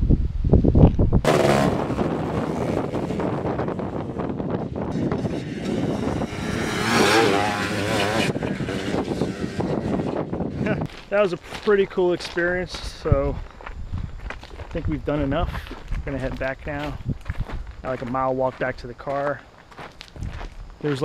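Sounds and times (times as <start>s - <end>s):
wind rumble on microphone: 0.0s - 18.9s, 19.8s - 21.0s
quad bike engines revving: 1.3s - 10.9s.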